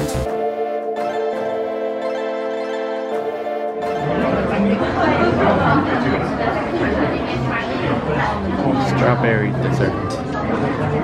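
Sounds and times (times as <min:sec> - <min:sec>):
indistinct chatter of people: 0:03.1 - 0:11.0.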